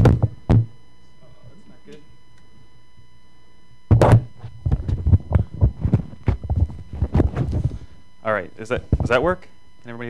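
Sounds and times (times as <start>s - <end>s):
microphone handling noise: 0.0s - 0.7s, 3.9s - 8.0s, 8.8s - 9.3s.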